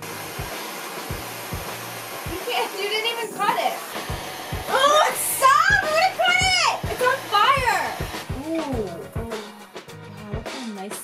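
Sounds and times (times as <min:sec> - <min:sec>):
gas blow torch hissing: 0:00.0 - 0:09.2
background music with beat: 0:00.3 - 0:02.4, 0:03.9 - 0:11.0.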